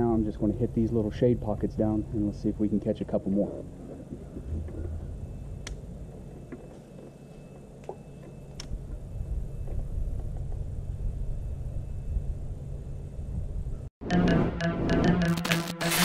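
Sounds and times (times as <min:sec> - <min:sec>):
low rumble: 0:03.7 - 0:06.2.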